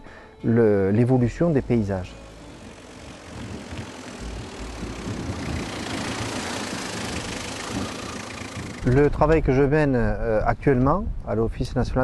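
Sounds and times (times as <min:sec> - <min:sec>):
van engine running: 0:01.1 - 0:09.5
road and tyre noise: 0:01.1 - 0:09.6.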